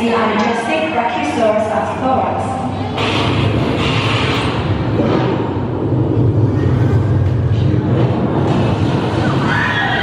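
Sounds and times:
vehicle driving low rumble: 2.8 - 10.0.

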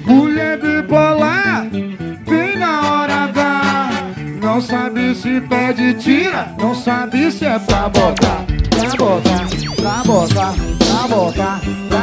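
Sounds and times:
person singing: 0.0 - 12.0
sustained guitar and keyboard: 0.0 - 12.0.

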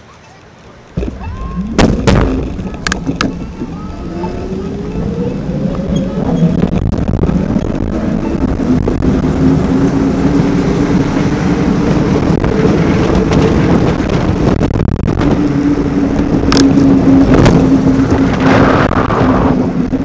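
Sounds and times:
road and wind noise: 0.0 - 20.0
electric bike motor whining: 2.4 - 13.3.

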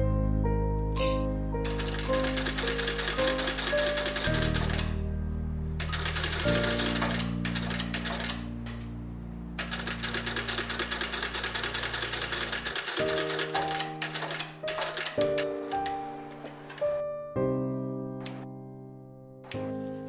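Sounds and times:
sewing machine stitching leather: 5.8 - 8.4, 9.6 - 15.5.

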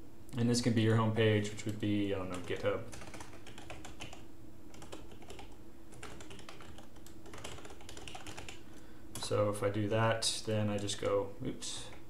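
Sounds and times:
computer keyboard key clicks: 1.6 - 8.6.

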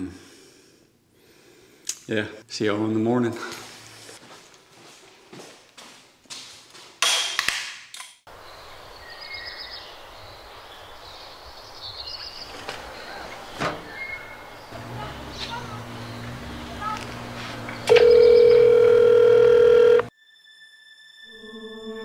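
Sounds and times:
outdoor background hiss: 8.3 - 17.9.

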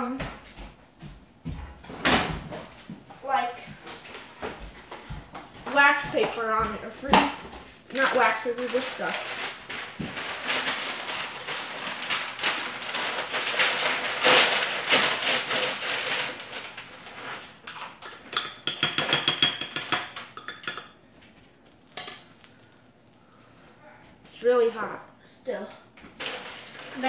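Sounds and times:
paper being handled: 7.9 - 17.5.

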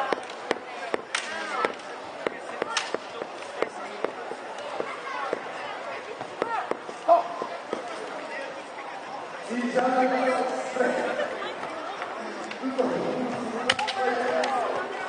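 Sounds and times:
voices in a hall: 0.0 - 15.0
bamboo swords clacking: 0.1 - 1.9, 2.6 - 3.1.

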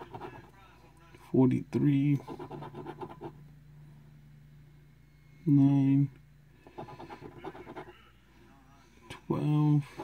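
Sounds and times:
coin scratching lottery ticket: 0.0 - 0.5, 2.2 - 3.4, 6.6 - 8.0.

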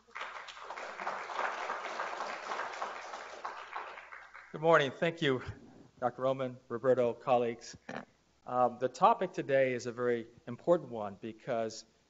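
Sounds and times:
audience applauding: 0.0 - 4.9.

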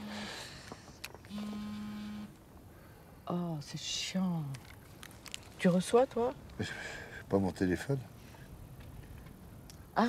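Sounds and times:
mobile phone vibrating: 1.3 - 2.4.

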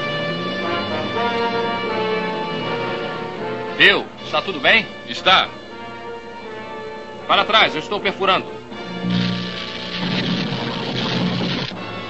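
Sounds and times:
electric hum with hiss: 8.8 - 12.0.

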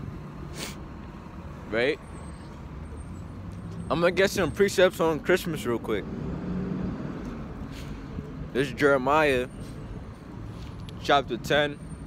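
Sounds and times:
city street traffic rumble: 0.0 - 12.0.

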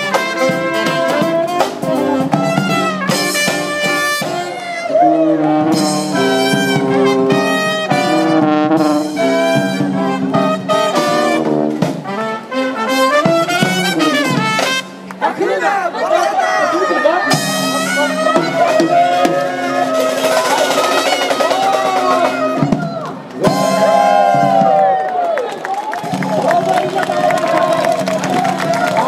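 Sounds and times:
brass band playing upbeat tune: 0.0 - 24.9, 26.0 - 29.0.

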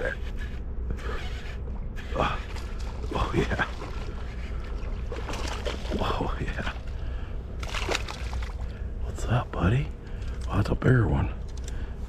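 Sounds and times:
water sloshing and splashing: 1.0 - 10.6.

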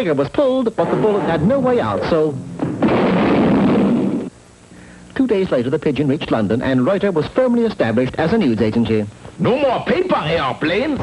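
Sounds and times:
cartoon explosion boom: 0.8 - 4.3.

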